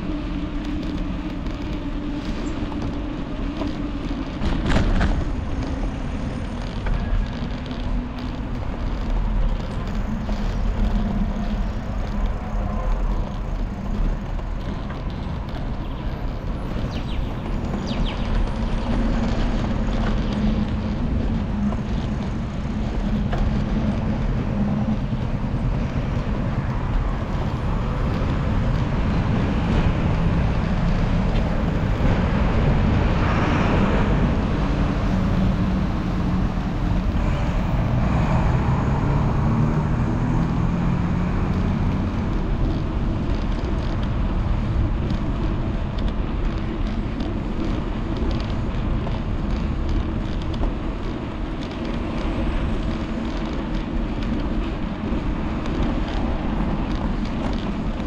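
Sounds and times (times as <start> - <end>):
motor vehicles passing: 0.0 - 58.0
vehicle engine drone: 0.0 - 58.0
wind rumble on microphone: 0.0 - 58.0.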